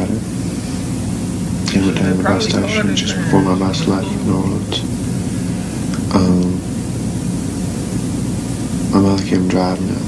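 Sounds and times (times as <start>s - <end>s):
low hum: 0.0s - 9.2s
film soundtrack hiss: 0.0s - 10.0s.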